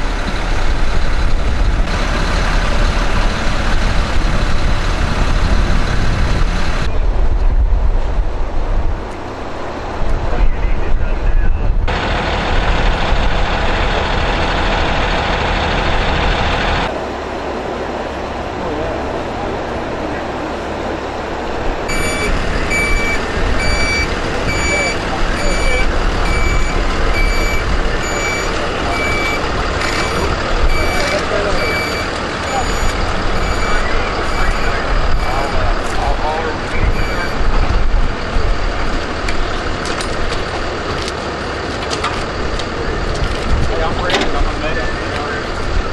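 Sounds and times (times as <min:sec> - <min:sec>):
idling truck engines: 0:00.0 - 0:07.2, 0:07.9 - 0:45.9
reversing alarm beeping: 0:21.9 - 0:36.0, 0:36.7 - 0:37.5.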